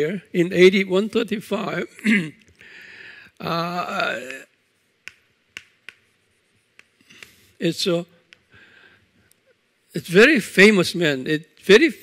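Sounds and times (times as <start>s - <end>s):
chalk tapping on blackboard: 5.0s - 7.5s.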